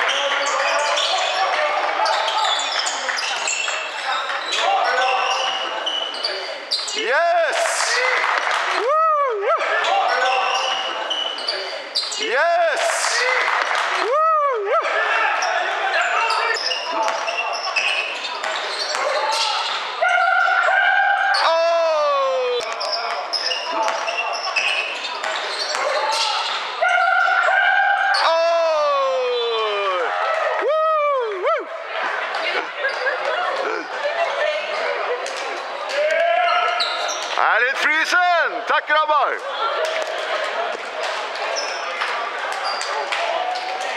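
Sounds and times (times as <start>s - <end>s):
crowd cheering: 0.0s - 6.0s, 7.0s - 11.2s, 12.2s - 43.9s
sneaker squeaks: 0.0s - 8.7s, 9.8s - 13.9s, 15.4s - 21.6s, 22.6s - 28.4s, 32.7s - 33.6s, 35.6s - 37.4s, 41.4s - 43.7s
people shouting: 7.0s - 11.0s, 12.2s - 17.1s, 19.0s - 22.8s, 25.8s - 31.8s.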